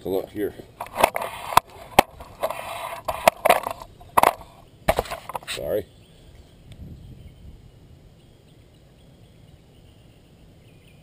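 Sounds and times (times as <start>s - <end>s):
scraping: 0.7s - 5.7s
sharp knocks and clicks: 0.8s - 5.5s.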